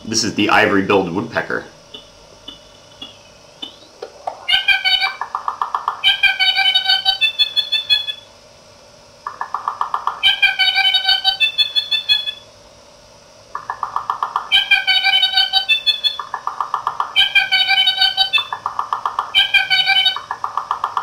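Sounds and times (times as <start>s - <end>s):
stacked steady tones: 1.7s - 4.4s
chopped electronic bird call: 1.8s - 8.3s, 9.3s - 12.5s, 13.6s - 21.0s.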